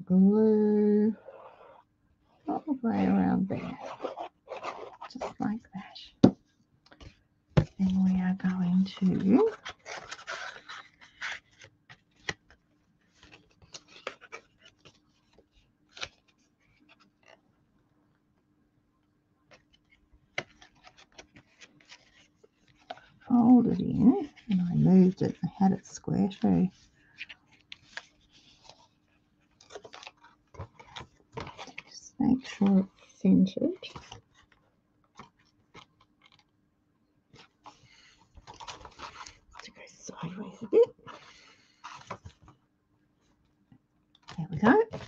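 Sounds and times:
paper rustling: 0:03.6 - 0:05.4, 0:06.9 - 0:17.4, 0:19.5 - 0:25.4, 0:26.3 - 0:33.0, 0:37.3 - 0:39.7, 0:41.0 - 0:42.6.

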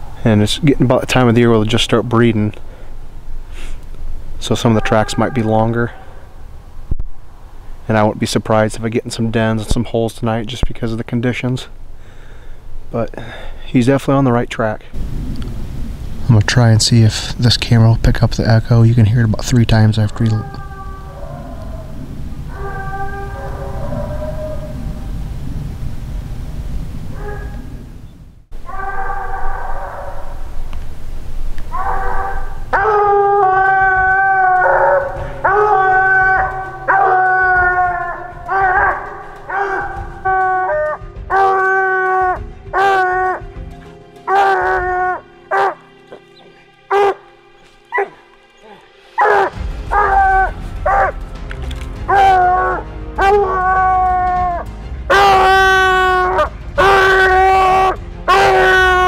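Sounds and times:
hound bawling: 0:04.4 - 0:06.2, 0:19.7 - 0:24.9, 0:28.6 - 0:30.5, 0:31.7 - 0:59.0
dog barking: 0:27.2 - 0:27.6, 0:38.7 - 0:40.1, 0:44.3 - 0:44.8, 0:45.5 - 0:45.8, 0:46.9 - 0:47.2, 0:48.0 - 0:50.1.

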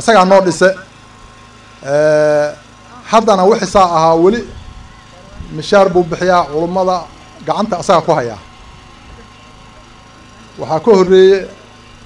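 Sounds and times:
man speaking into a microphone: 0:00.0 - 0:00.9, 0:01.8 - 0:04.6, 0:05.5 - 0:08.4, 0:10.6 - 0:11.6.

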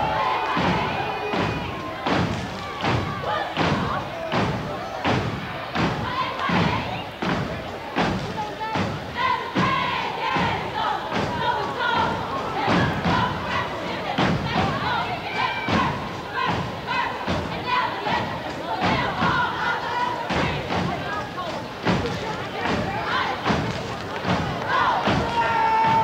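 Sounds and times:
crowd voices: 0:00.0 - 0:26.0
feet stomping in unison: 0:00.0 - 0:26.0.

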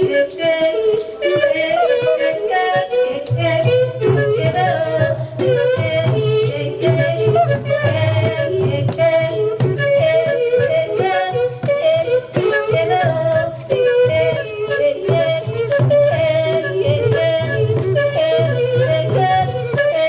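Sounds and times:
woman singing through microphone: 0:00.0 - 0:20.0.

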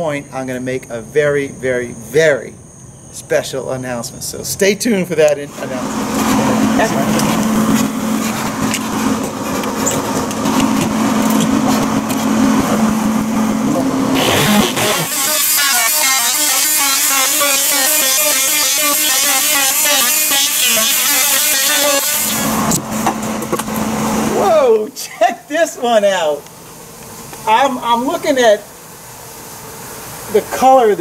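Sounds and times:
electric power saw cutting: 0:05.5 - 0:24.4.

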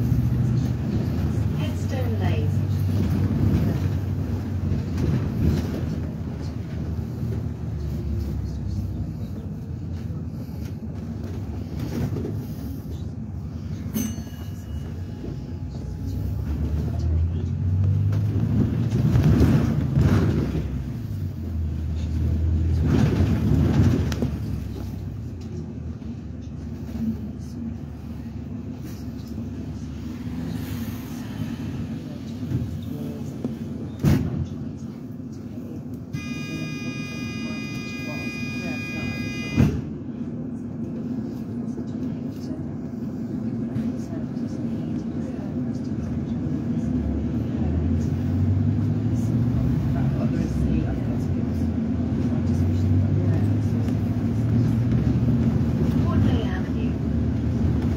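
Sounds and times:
bus engine: 0:00.0 - 0:57.9.

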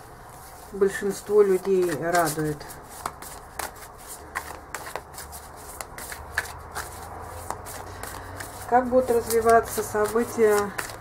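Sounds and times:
cards being shuffled: 0:00.4 - 0:11.0.

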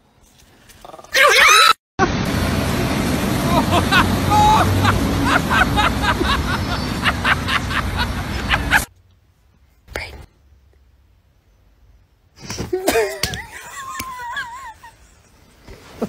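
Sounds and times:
people laughing: 0:03.4 - 0:08.9, 0:12.7 - 0:15.2.

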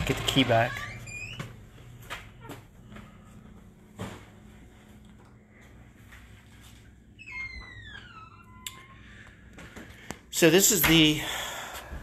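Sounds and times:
door hinge squeaking: 0:00.0 - 0:01.5, 0:07.2 - 0:09.1.

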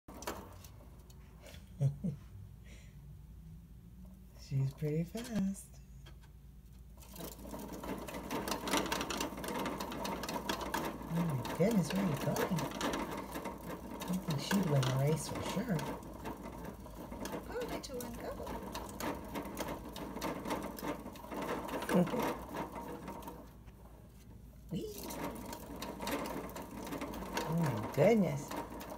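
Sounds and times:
hamster wheel clicking rattle: 0:00.1 - 0:01.2, 0:04.6 - 0:05.6, 0:07.0 - 0:24.0, 0:24.6 - 0:28.9.

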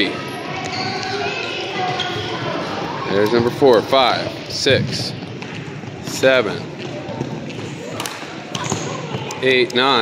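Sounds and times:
balls kicked and bouncing: 0:04.7 - 0:10.0.

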